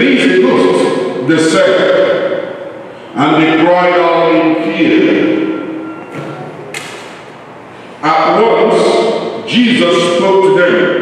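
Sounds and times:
man's voice echoing: 0:00.0 - 0:11.0.

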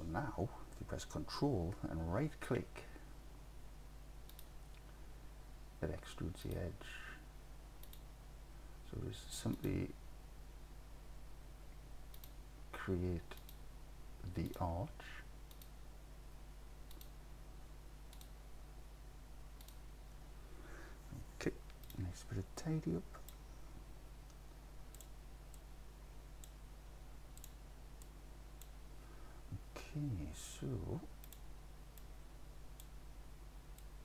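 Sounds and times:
low steady hum: 0:00.0 - 0:34.0
computer mouse clicks: 0:04.2 - 0:04.9, 0:07.8 - 0:08.1, 0:12.1 - 0:12.4, 0:13.4 - 0:13.6, 0:15.5 - 0:15.8, 0:16.8 - 0:17.2, 0:18.1 - 0:18.4, 0:19.6 - 0:19.9, 0:21.6 - 0:22.0, 0:24.2 - 0:25.7, 0:27.3 - 0:28.8, 0:31.2 - 0:32.1.

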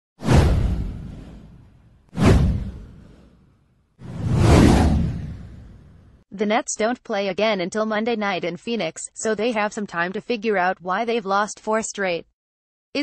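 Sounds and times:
whoosh sound effects: 0:00.2 - 0:03.4, 0:04.0 - 0:06.0.

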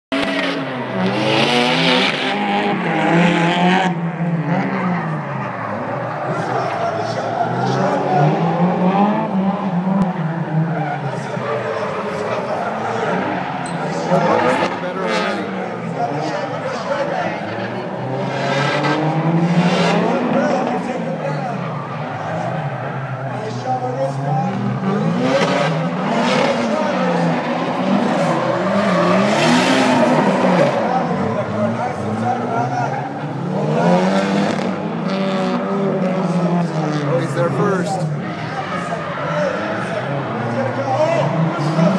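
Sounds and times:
car engine revving hard: 0:00.1 - 0:41.9
tyres squealing and skidding: 0:00.1 - 0:41.9.

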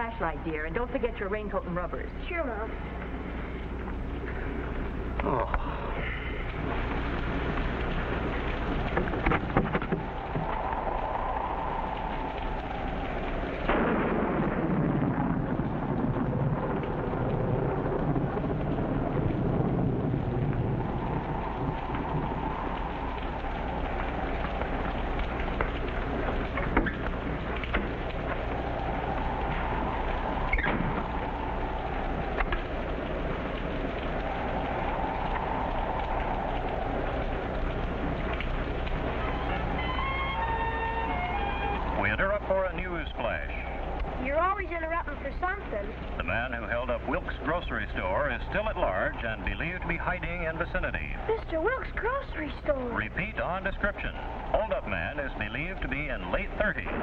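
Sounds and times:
heavy rain: 0:00.0 - 0:57.0
thunder rumbling: 0:00.0 - 0:57.0.

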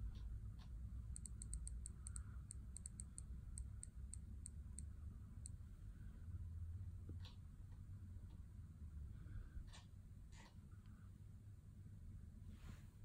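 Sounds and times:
steady low hum: 0:00.0 - 0:13.0
time-picker wheel ticking: 0:01.1 - 0:04.8.

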